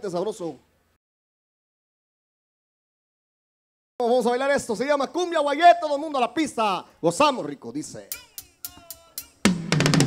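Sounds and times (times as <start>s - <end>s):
live cumbia band: 8.1s - 10.0s.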